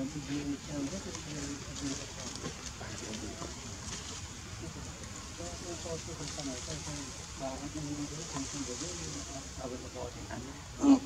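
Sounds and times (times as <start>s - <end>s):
people talking indistinctly: 0.0s - 11.0s.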